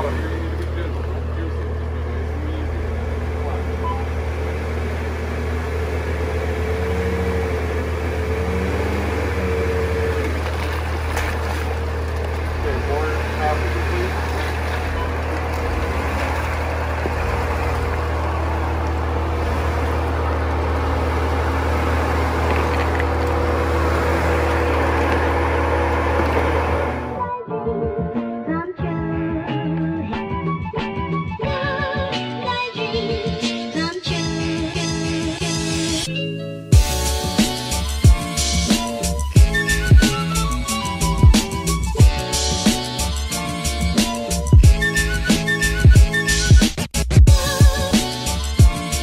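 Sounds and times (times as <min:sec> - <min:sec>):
car engine running: 0:00.0 - 0:27.2
music: 0:26.8 - 0:49.0.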